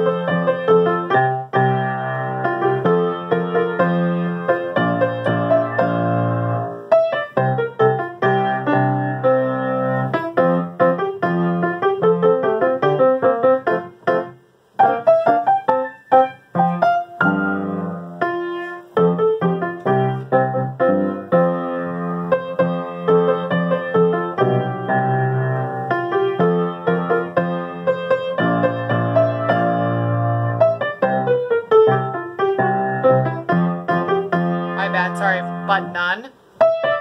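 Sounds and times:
piano playing: 0.0s - 37.0s.

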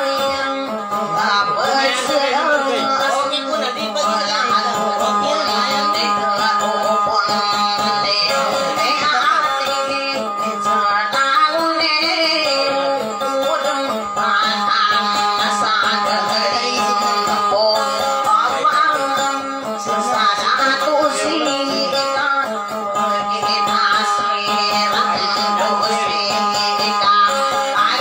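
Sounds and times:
acoustic guitar: 0.0s - 28.0s
woman singing into microphone: 0.0s - 28.0s.

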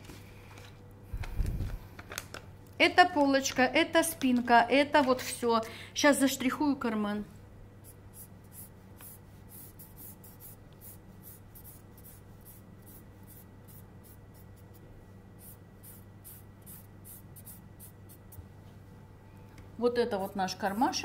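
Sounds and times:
pen scratching on paper: 8.2s - 14.8s.

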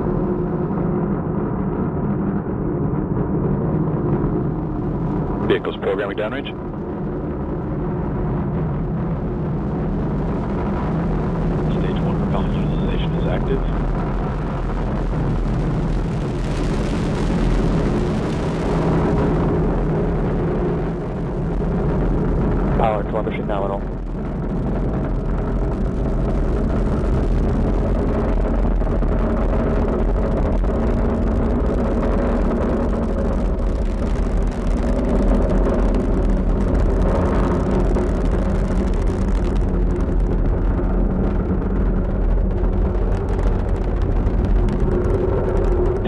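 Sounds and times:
rocket engines rumbling: 0.0s - 46.0s.

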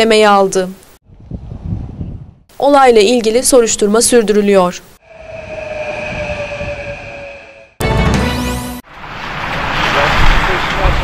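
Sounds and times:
electric train passing: 5.0s - 10.9s.

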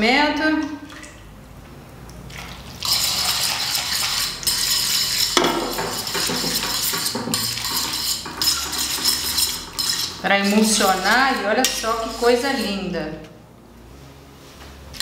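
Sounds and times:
metal fork scraping a frying pan: 2.8s - 12.9s.

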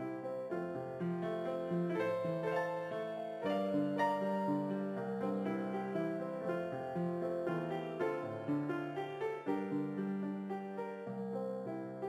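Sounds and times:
keyboard melody: 0.0s - 12.0s.

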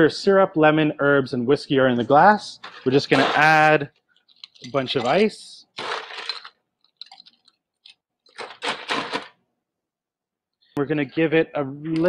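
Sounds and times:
ice cubes clinking in glass: 4.3s - 7.5s.

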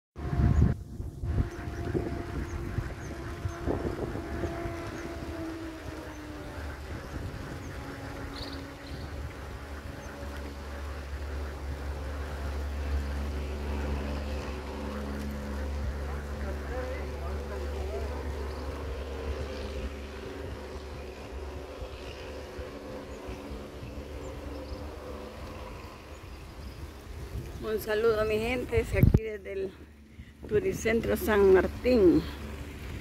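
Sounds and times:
low rumble: 0.2s - 33.0s
motor humming: 0.2s - 33.0s.

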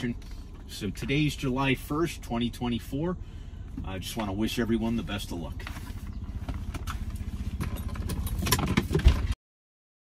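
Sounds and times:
car engine idling: 0.0s - 9.4s.

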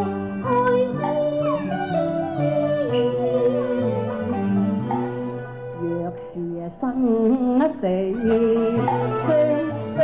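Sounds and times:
opera accompaniment ensemble: 0.0s - 10.0s.

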